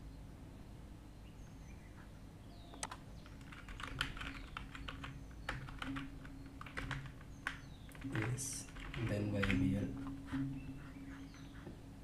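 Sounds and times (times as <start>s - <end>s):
computer keyboard typing: 2.8s - 10.1s.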